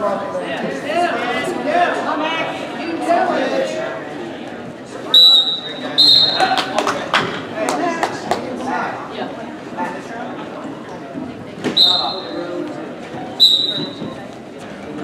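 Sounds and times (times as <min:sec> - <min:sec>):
voices in a gym: 0:00.0 - 0:15.0
referee's whistle blasts: 0:05.1 - 0:06.5, 0:11.8 - 0:12.4, 0:13.4 - 0:14.1.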